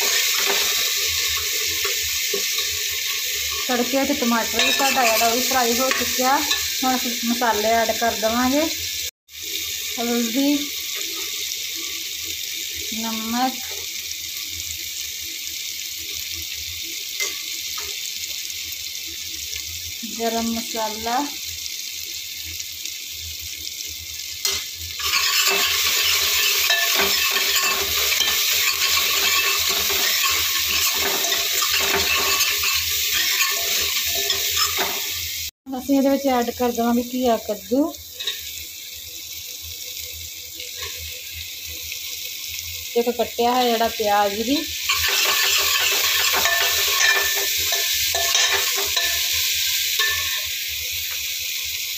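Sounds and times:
masala sizzling in oil: 0.0s - 51.9s.

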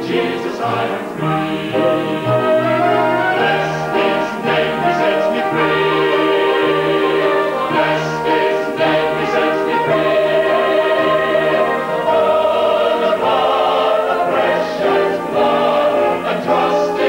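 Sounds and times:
brass band playing: 0.0s - 17.0s
choir singing sustained chords: 0.0s - 17.0s.

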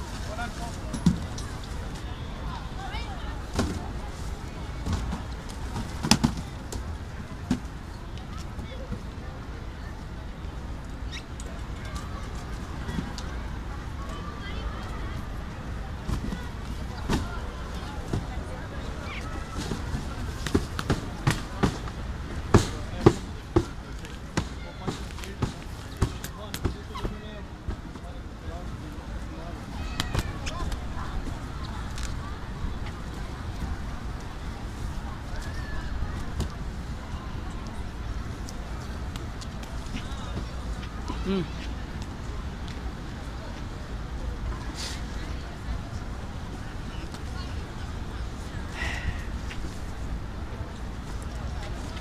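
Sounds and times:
murmur of distant voices: 0.0s - 52.0s.

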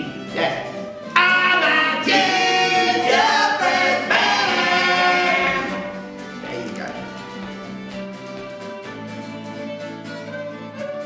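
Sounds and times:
voices singing unaccompanied: 0.4s - 6.1s.

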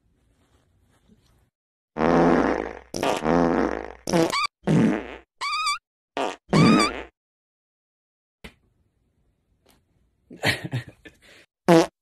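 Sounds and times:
dog farting: 2.0s - 5.3s, 6.2s - 7.1s, 11.7s - 11.9s.

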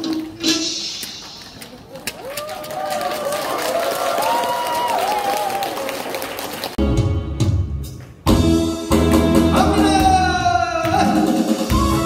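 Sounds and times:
audience clapping: 1.3s - 6.8s
loud bass-heavy music: 6.8s - 12.0s.

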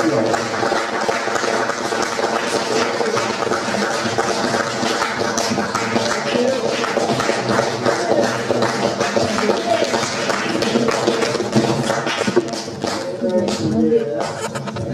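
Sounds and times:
audience applauding: 0.0s - 14.8s.

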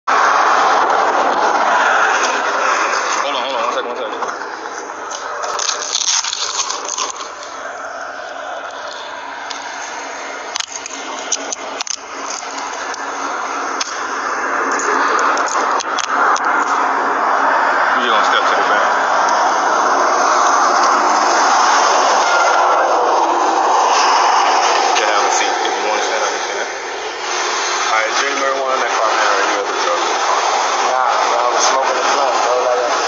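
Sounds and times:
highway traffic rushing: 0.0s - 33.0s.

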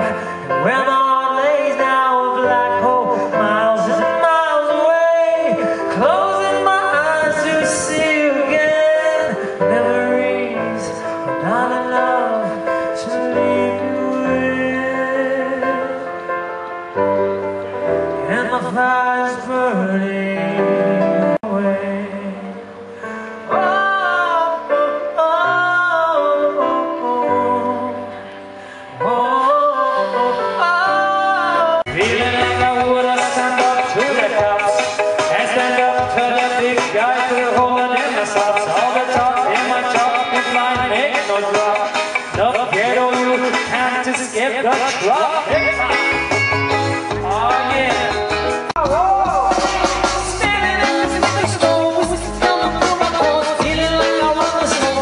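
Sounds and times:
man singing: 0.0s - 16.2s, 18.1s - 28.2s, 28.9s - 55.0s
acoustic guitar: 0.0s - 55.0s
live band playing chords: 0.0s - 55.0s.

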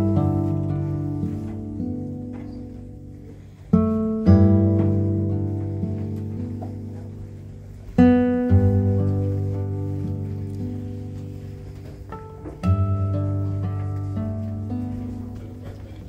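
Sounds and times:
acoustic guitar chords: 0.0s - 16.0s.

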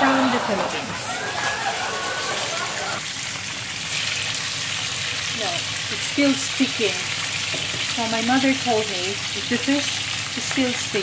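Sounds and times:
fish sizzling in oil: 1.5s - 11.0s.

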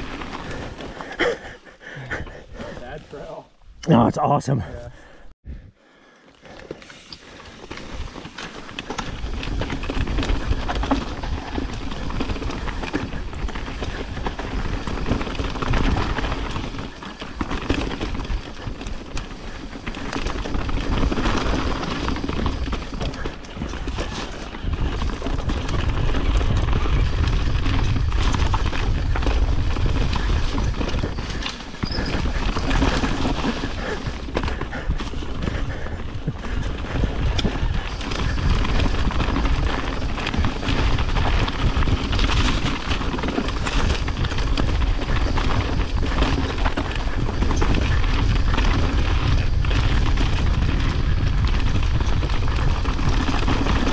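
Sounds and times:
wind rumble on microphone: 0.0s - 1.2s, 7.5s - 53.9s
bike clattering: 0.0s - 1.6s, 6.5s - 53.9s
bike tyres rattling over rock: 0.0s - 3.3s, 6.4s - 53.9s.

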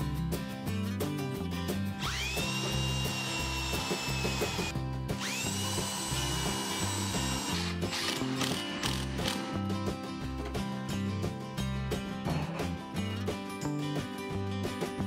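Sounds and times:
background music: 0.0s - 15.0s
cordless drill boring into wood: 2.0s - 9.4s.

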